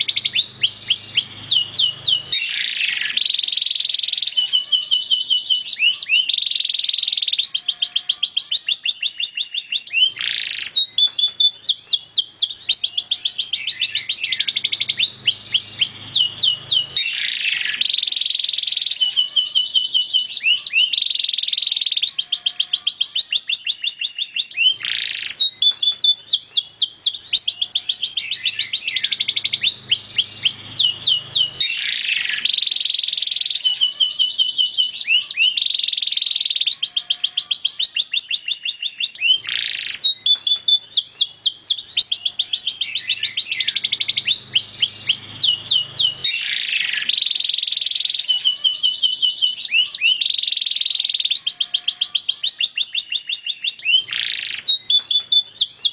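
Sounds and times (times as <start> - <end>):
canary singing trills: 0.0 - 55.9.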